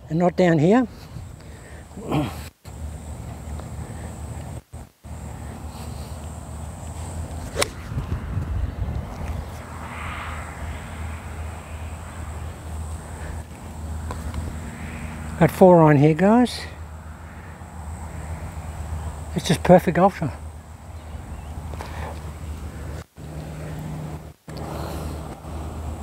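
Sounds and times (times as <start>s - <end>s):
golf club striking ball: 7.4s - 7.9s.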